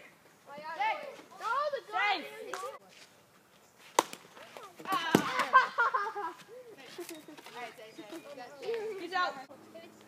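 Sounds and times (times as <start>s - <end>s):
plastic bat hitting ball: 4.0s - 5.6s.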